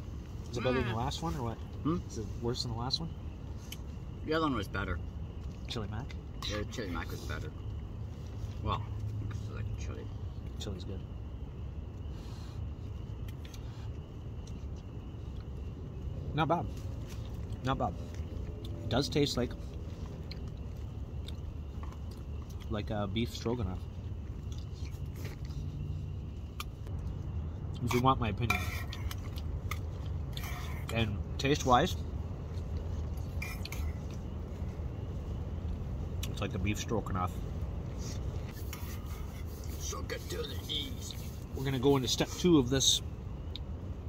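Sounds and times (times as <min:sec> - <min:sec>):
steady low rumble: 0:00.0 - 0:44.0.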